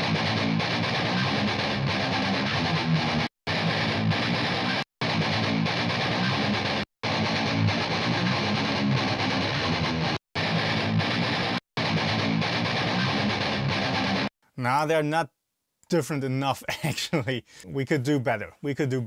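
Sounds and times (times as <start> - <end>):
distorted electric guitar riff: 0.0 - 14.3.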